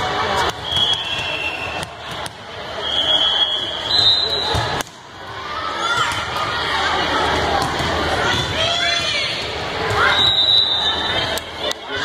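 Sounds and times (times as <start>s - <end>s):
spectators' voices in a hall: 0.0s - 12.0s
referee's whistle: 0.5s - 1.9s, 2.8s - 4.7s, 10.0s - 11.2s.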